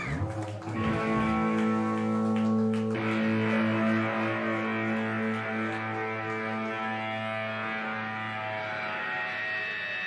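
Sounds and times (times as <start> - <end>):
electric guitars holding a chord: 0.7 - 10.0.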